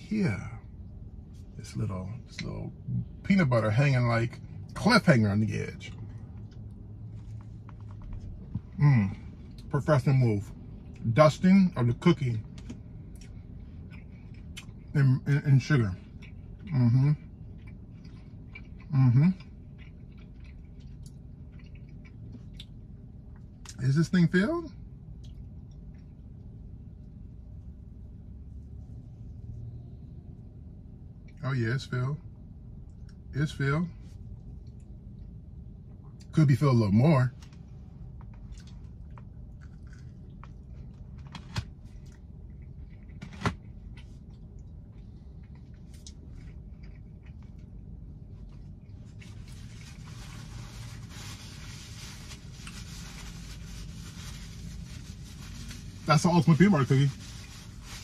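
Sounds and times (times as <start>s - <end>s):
low steady hum: 0.0s - 58.0s
chewing cookie: 12.6s - 15.0s, 15.6s - 23.8s, 38.2s - 49.9s.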